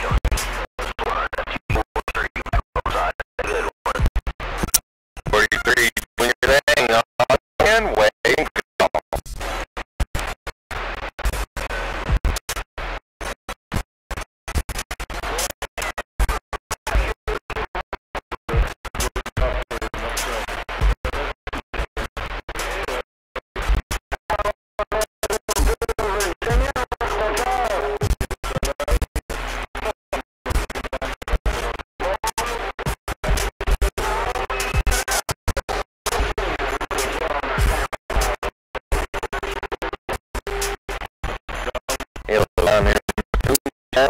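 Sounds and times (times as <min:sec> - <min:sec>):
garbled voice over radio: 0:00.0 - 0:09.2, 0:24.2 - 0:29.2, 0:29.8 - 0:44.0.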